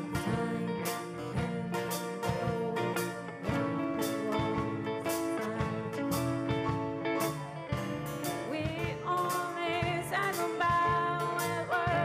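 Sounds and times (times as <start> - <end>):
woman singing lead vocal: 0.0 - 6.4, 8.4 - 12.0
live rock band playing: 0.0 - 12.0.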